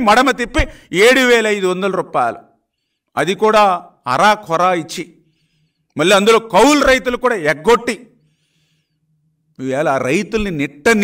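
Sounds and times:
man talking: 0:00.0 - 0:02.5, 0:03.2 - 0:05.2, 0:06.0 - 0:08.1, 0:09.6 - 0:11.0.

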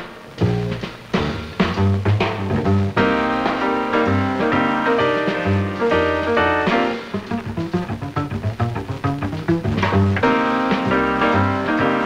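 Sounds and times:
drum kit: 0:00.0 - 0:12.0
double bass: 0:00.3 - 0:12.0
acoustic piano: 0:01.2 - 0:12.0.

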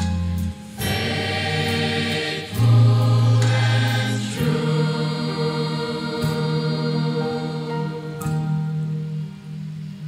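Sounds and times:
mixed choir singing: 0:00.8 - 0:08.7.

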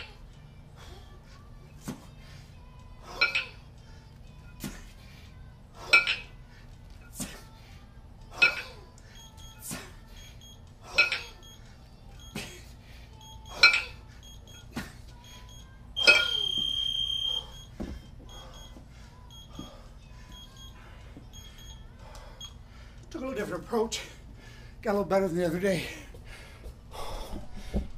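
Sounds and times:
kettlebells clanking: 0:03.1 - 0:03.6, 0:05.8 - 0:06.4, 0:08.3 - 0:08.8, 0:10.9 - 0:11.4, 0:13.6 - 0:14.1, 0:16.0 - 0:16.7
long electronic timer beep: 0:09.1 - 0:12.5, 0:13.1 - 0:22.6.

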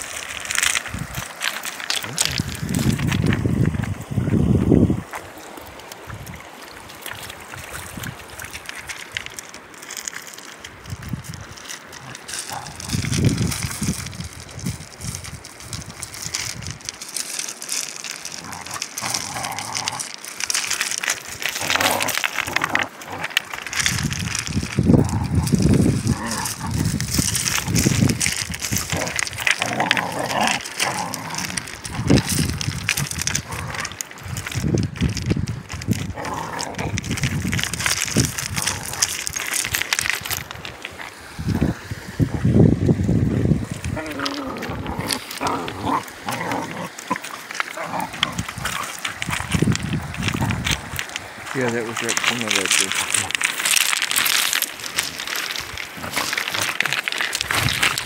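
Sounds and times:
shallow stream rushing: 0:00.0 - 0:58.0
stones clattering under paws: 0:00.0 - 0:58.0
puppies growling: 0:11.9 - 0:13.6, 0:18.0 - 0:40.9, 0:43.7 - 0:58.0.

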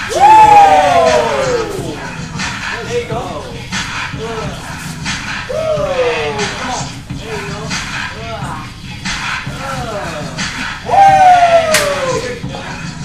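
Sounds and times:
music beat: 0:00.0 - 0:13.0
onlookers shouting: 0:00.1 - 0:02.0, 0:10.9 - 0:12.4
sharp smack: 0:11.7 - 0:12.0.

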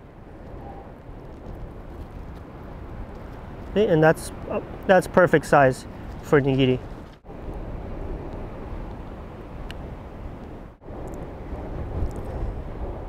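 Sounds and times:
wind noise on microphone: 0:00.0 - 0:13.0.

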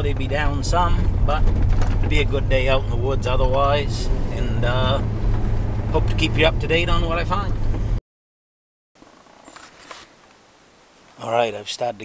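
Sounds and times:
woodland background hiss: 0:09.0 - 0:12.0
camera handling noise: 0:09.4 - 0:10.1.

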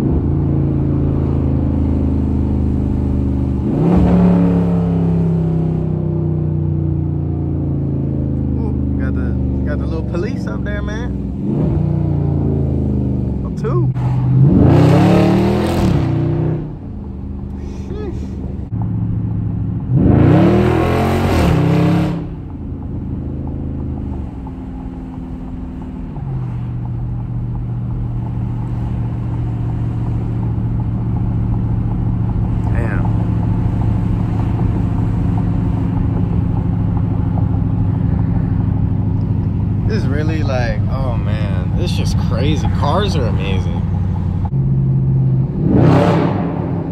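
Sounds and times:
car engine accelerating: 0:00.0 - 0:46.9
car engine cruising drone: 0:00.0 - 0:46.9.

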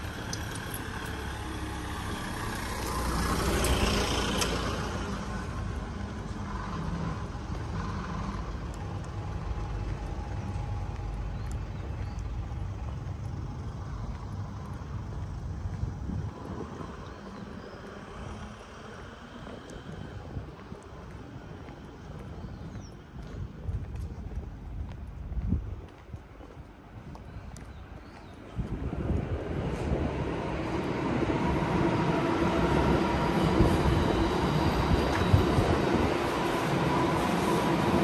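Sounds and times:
truck driving past: 0:00.0 - 0:17.0
traffic hum: 0:00.0 - 0:38.0.

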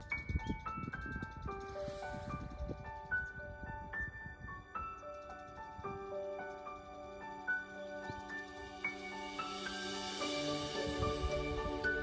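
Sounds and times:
chiming keyboard melody: 0:00.0 - 0:12.0.

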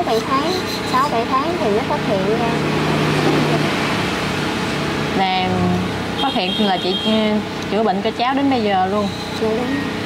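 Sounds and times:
mechanical noise with low hum: 0:00.0 - 0:10.0.

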